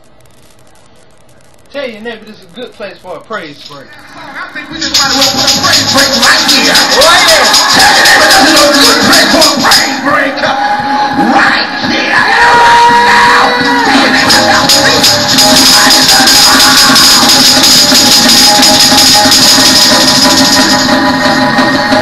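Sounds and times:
up-tempo gospel music: 4.6 - 10.1, 13.6 - 22.0
tambourine shaken: 4.8 - 10.0, 13.8 - 21.2.

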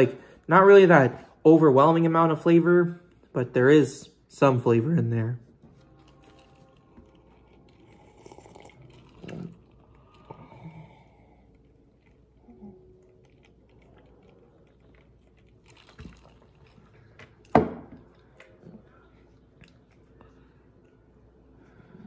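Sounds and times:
sipping and swallowing: 5.6 - 21.0.

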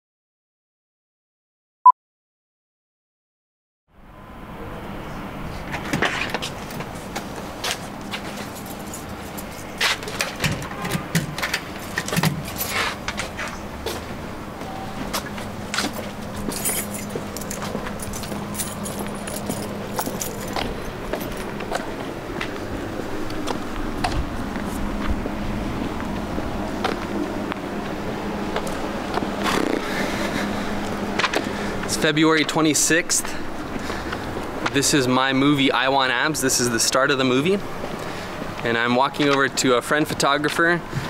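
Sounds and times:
footsteps on pavement: 5.6 - 10.5, 11.3 - 34.8
steady low hum: 11.3 - 39.0
keys jangling in deadbolt: 16.4 - 21.6.

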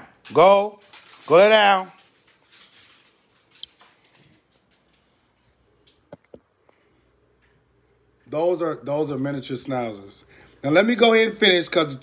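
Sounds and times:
dog claws on hardwood floor: 0.1 - 5.2.

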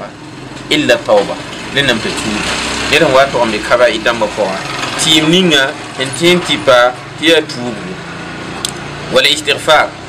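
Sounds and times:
man talking: 0.0 - 8.0, 9.1 - 10.0.

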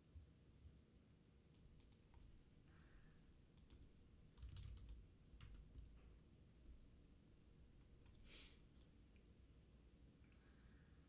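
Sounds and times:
faint typing on keyboard: 1.5 - 6.9, 7.6 - 9.4.

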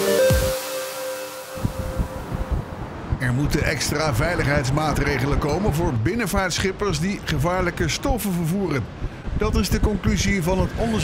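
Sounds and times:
electronic news jingle: 0.0 - 2.8
wind buffeting microphone: 1.6 - 6.5, 8.8 - 11.0.

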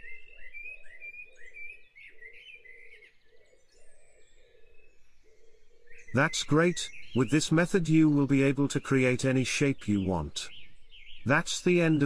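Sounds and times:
birds singing: 0.0 - 12.0.

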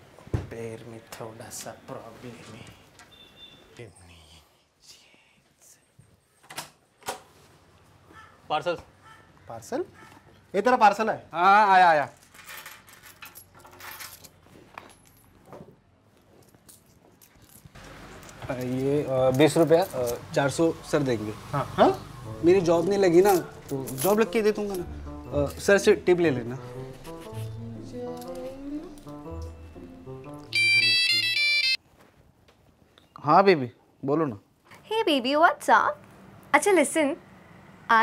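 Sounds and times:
coins clinking: 12.2 - 15.4, 16.6 - 20.2, 22.6 - 26.0, 26.9 - 29.6
phone ringtone melody: 29.6 - 31.8.

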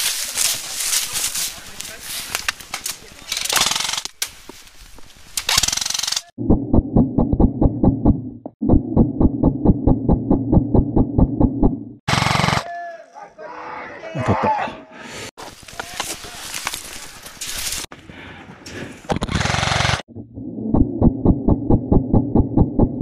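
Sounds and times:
dry reeds rustling: 0.0 - 3.4, 15.4 - 17.9.

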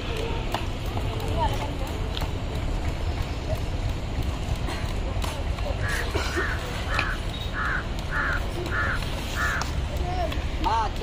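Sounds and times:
crow cawing: 5.8 - 9.7.

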